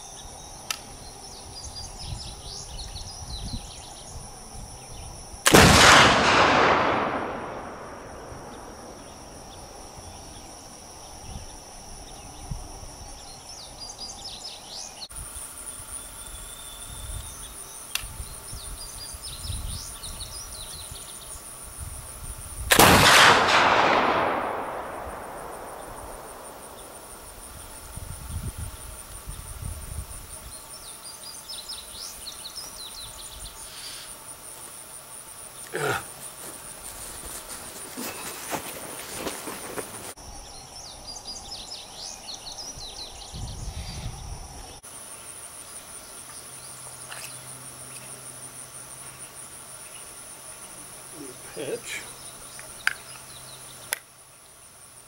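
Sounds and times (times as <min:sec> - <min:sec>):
rifle shots echoing: 0:05.5 - 0:09.2, 0:22.7 - 0:27.3.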